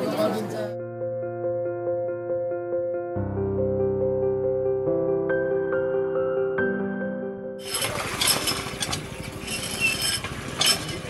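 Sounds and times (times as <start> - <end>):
hand pump clanking: 7.6 - 11.0
water splashing into metal bucket: 7.6 - 11.0.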